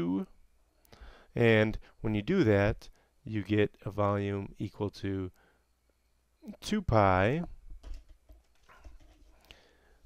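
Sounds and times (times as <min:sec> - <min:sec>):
soft faint hiss: 0:00.0 - 0:10.0.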